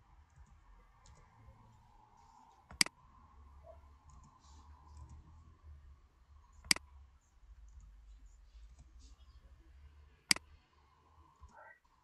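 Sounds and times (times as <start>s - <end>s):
faint low hum: 0.0s - 12.0s
computer mouse click: 2.7s - 3.0s.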